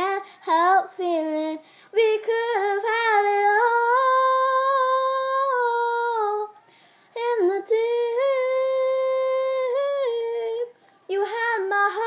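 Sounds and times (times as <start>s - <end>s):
girl singing unaccompanied: 0.0s - 12.0s.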